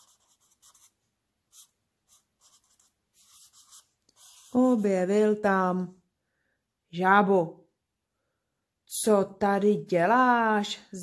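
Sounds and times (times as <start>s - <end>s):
pen strokes on paper: 0.0s - 5.1s.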